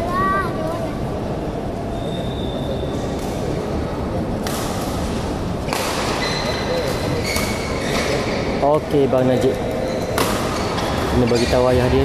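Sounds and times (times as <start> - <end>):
rumble of hall noise: 0.0 - 12.0
shuttlecock hits: 4.4 - 6.2, 10.1 - 11.6
shoe squeaks on court floor: 6.1 - 8.6.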